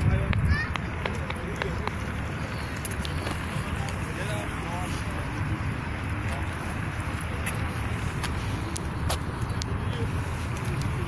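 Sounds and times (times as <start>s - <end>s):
wind rumble on microphone: 0.0s - 0.9s
people's voices: 0.0s - 11.0s.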